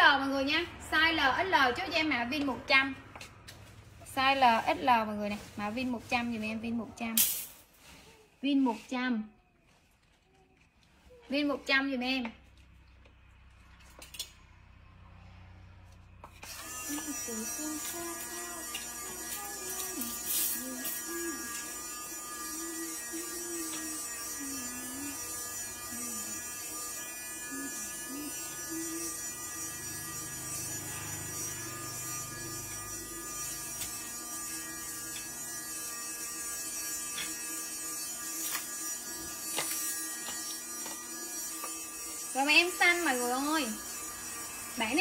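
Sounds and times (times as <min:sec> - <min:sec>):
electrical buzz of held tones: 0:16.3 - 0:45.0
faint wavering tune: 0:16.6 - 0:45.0.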